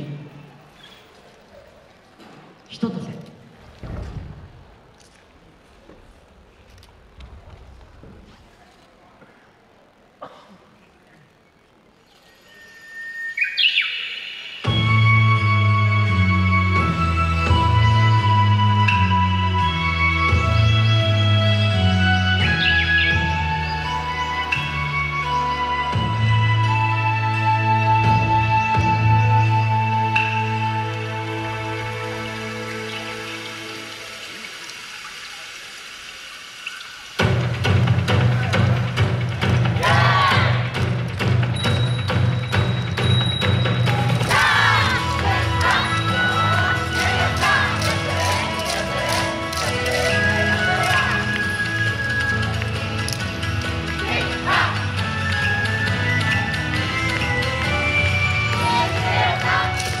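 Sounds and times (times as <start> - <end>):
dance music over a loudspeaker: 37.5 - 51.8, 53.7 - 55.3.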